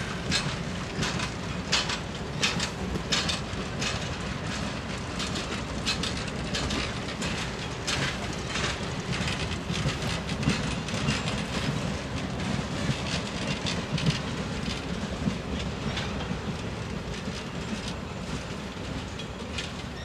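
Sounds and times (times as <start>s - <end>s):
low train rumble: 0.0s - 20.0s
train wheels clicking over rails: 0.0s - 20.0s.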